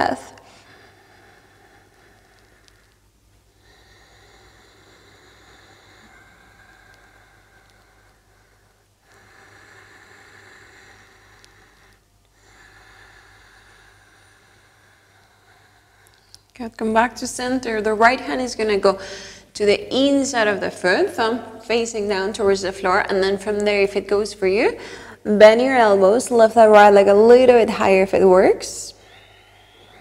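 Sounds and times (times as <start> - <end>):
low hum: 0.0 - 30.0
person breathing slowly: 0.4 - 16.5, 18.3 - 19.6, 24.7 - 25.3, 29.0 - 30.0.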